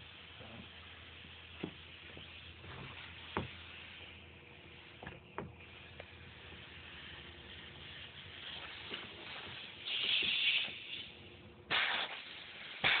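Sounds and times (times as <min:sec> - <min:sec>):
compressed air hissing: 0:00.0 - 0:13.0.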